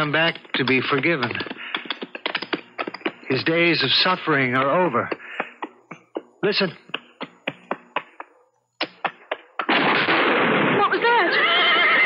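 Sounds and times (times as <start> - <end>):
horse whinnying: 11.3 - 12.0.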